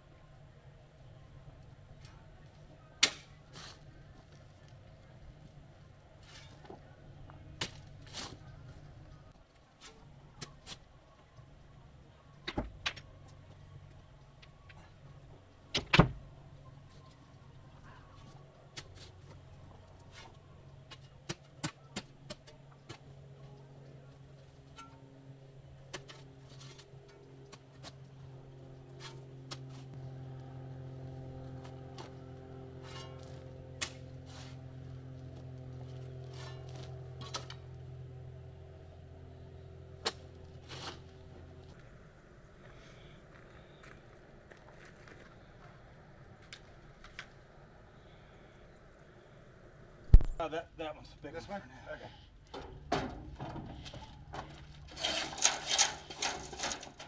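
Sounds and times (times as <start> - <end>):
engine humming: 0.0 - 57.0
shovel scraping rocky soil: 40.0 - 41.1, 54.9 - 57.0.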